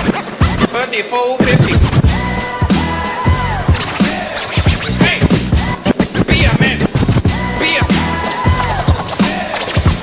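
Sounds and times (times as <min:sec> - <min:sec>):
hip hop music: 0:00.0 - 0:10.0
turntable scratching: 0:00.0 - 0:10.0.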